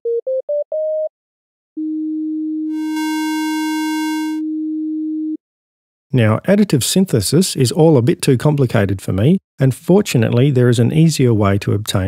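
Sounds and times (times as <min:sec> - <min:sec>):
synthesizer tone turning buzzy: 0:02.7 - 0:04.4.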